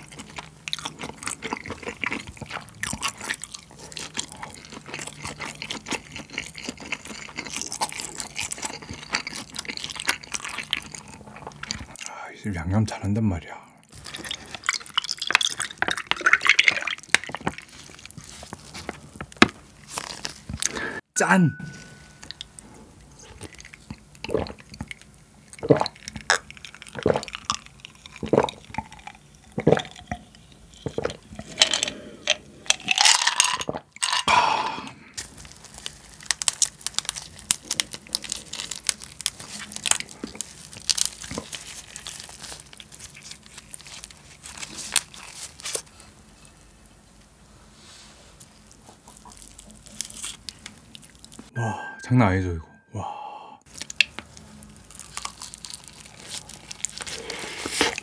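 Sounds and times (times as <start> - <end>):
crab shell crunching and cracking: 0.0 - 12.0, 13.9 - 20.8, 22.2 - 34.6, 35.2 - 46.1, 48.4 - 51.5, 53.7 - 58.0
gulping a drink: 23.4 - 32.4.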